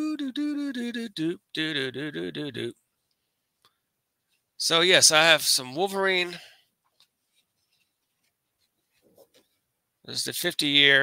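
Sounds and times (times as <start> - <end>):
paper poster rustling: 6.8 - 9.7.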